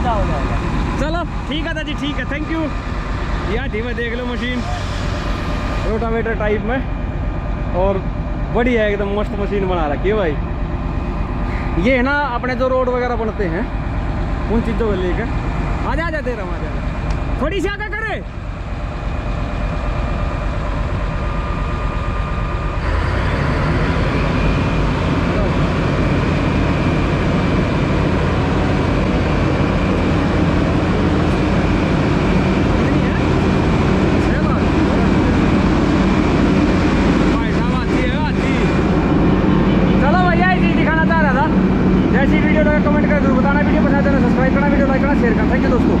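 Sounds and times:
diesel engine running: 0:00.0 - 0:46.0.

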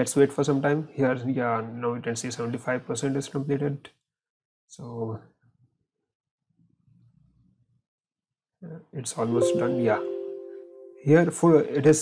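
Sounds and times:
man speaking: 0:09.1 - 0:10.1.

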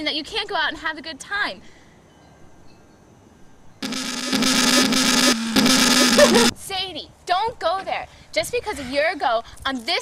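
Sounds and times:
harsh distorted blast: 0:03.8 - 0:06.5.

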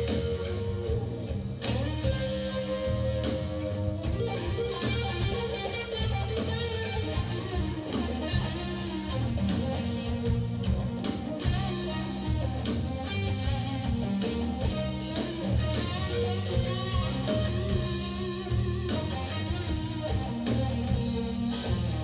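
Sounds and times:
bass guitar: 0:00.0 - 0:22.0
drums: 0:00.0 - 0:22.0
electric guitar lead lines: 0:00.0 - 0:22.0.

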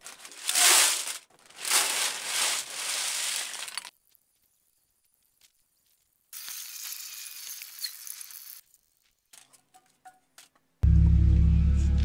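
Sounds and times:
crushed cans sliding and rattling: 0:00.0 - 0:03.9.

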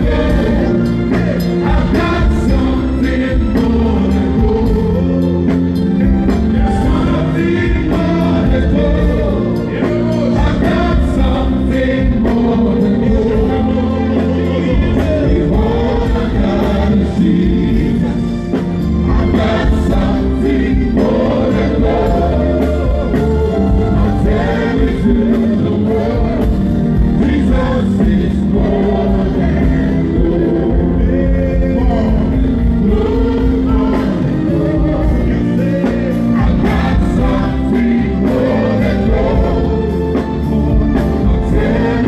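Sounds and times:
gospel singers with keyboards: 0:00.0 - 0:42.0.

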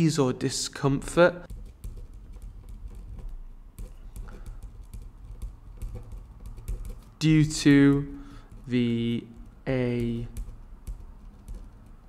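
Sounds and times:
pen writing on paper: 0:01.5 - 0:12.0.

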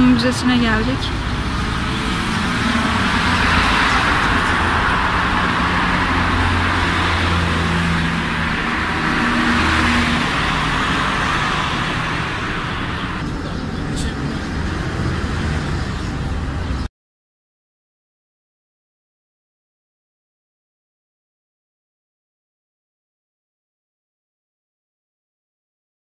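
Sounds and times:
road vehicles passing: 0:00.0 - 0:16.9.

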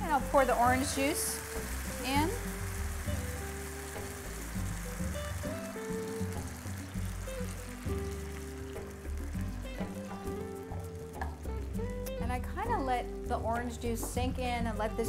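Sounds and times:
background music: 0:00.0 - 0:15.0
juice sizzling in hot oil: 0:00.0 - 0:15.0.

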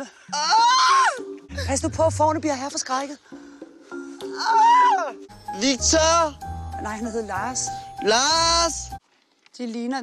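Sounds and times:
woman screaming: 0:00.3 - 0:01.3, 0:04.3 - 0:05.2
background music with held notes: 0:01.1 - 0:09.0.

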